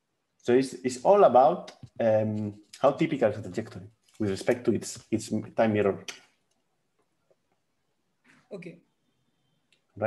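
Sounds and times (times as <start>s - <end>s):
man speaking: 0.5s - 6.3s.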